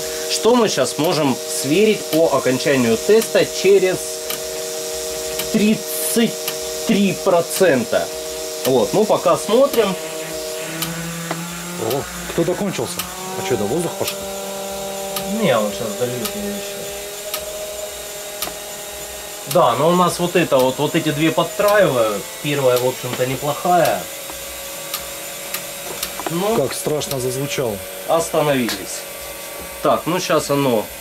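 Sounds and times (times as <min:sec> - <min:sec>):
lower hum: 0:00.0 - 0:29.8
electric pump humming: 0:00.0 - 0:31.0
fuel injectors spraying fluid: 0:00.0 - 0:31.0.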